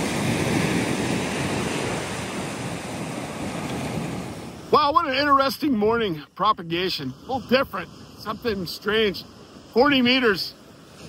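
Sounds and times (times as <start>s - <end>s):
ocean surf washing on beach: 0.0s - 11.0s.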